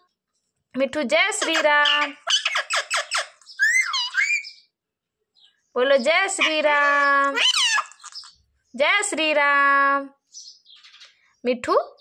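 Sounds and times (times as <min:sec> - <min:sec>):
parrot chattering and calling: 0:01.4 - 0:04.7, 0:06.1 - 0:08.4.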